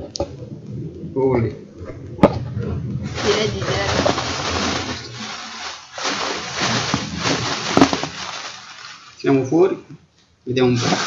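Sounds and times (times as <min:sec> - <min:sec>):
plastic air pillows crinkling: 0:03.1 - 0:09.5, 0:10.7 - 0:11.0.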